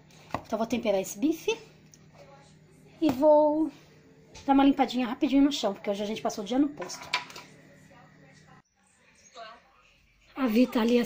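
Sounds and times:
woman speaking: 0.5 - 11.0.

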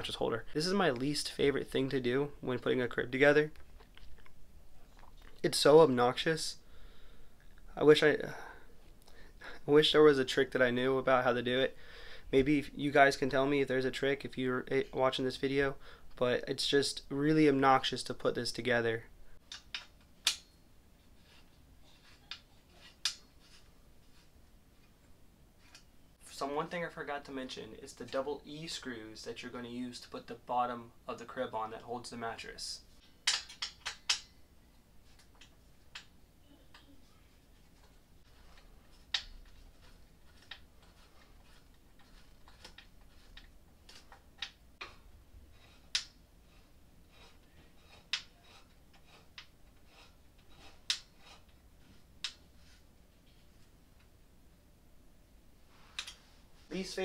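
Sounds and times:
metal frame clicking and clinking: 33.0 - 34.4.

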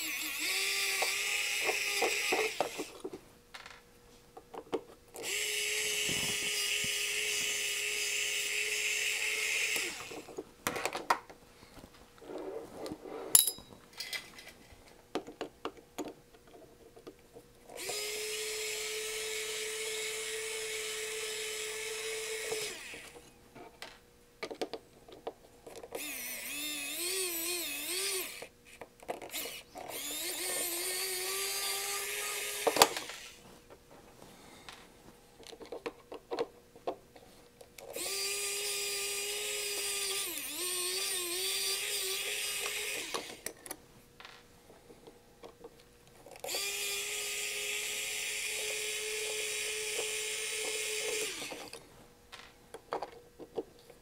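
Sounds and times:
electric screwdriver motor: 0.0 - 3.0, 5.2 - 10.3, 17.8 - 23.2, 26.0 - 28.5, 29.3 - 33.4, 37.9 - 43.5, 46.4 - 51.8.

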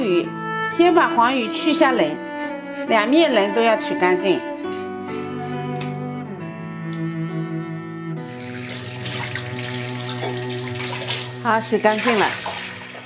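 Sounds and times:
music with low string notes: 0.0 - 13.0
tap water pouring into sink: 8.2 - 13.0.

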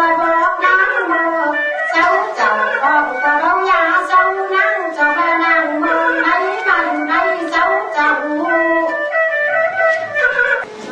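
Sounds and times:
instrumental accompaniment: 0.0 - 10.9
person singing wavering melody: 0.0 - 10.9.

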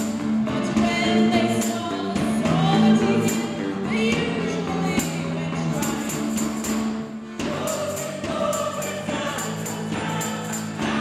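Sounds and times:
high percussion beat: 0.0 - 11.0
live band music: 0.0 - 11.0
voices singing together: 0.5 - 11.0.

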